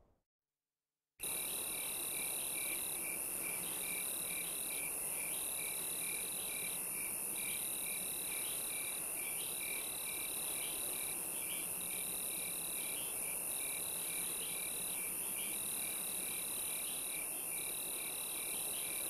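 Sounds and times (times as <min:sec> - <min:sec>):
pulsing cricket chirp: 0:01.2 - 0:19.0.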